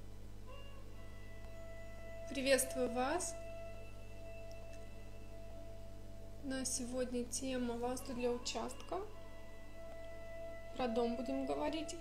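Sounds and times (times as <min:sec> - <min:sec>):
faint background music: 0:00.0 - 0:12.0
steady low hum: 0:00.0 - 0:12.0.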